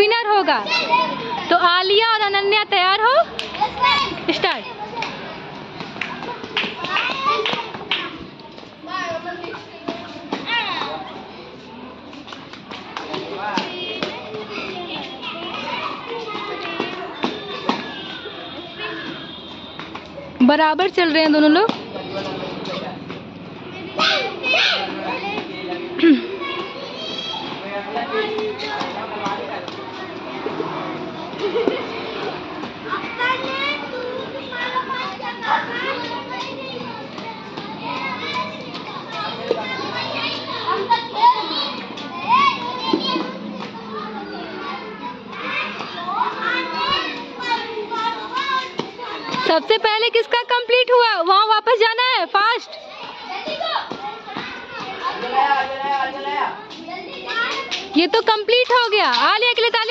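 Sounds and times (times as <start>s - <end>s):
children shouting and cheering: 0.5s - 2.6s, 3.2s - 20.4s, 21.7s - 59.9s.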